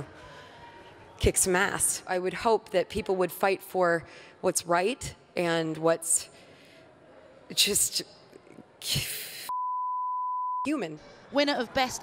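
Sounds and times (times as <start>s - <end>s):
censor bleep tone: 9.5s - 10.7s.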